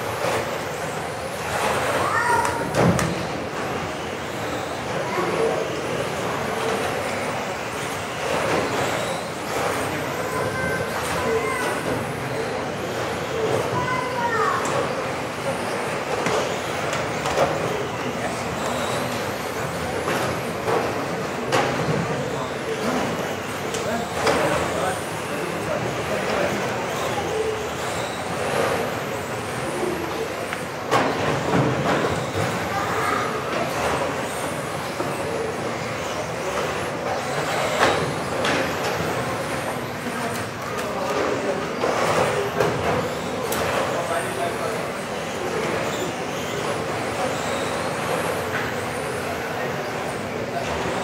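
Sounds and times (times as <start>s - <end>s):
murmur of voices: 0.0s - 51.0s
toy car motors whining: 0.1s - 51.0s.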